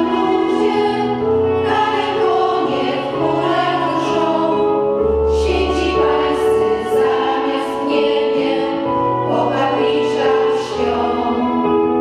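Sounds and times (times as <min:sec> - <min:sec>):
keyboard accompaniment: 0:00.0 - 0:12.0
women's choir singing: 0:00.0 - 0:12.0.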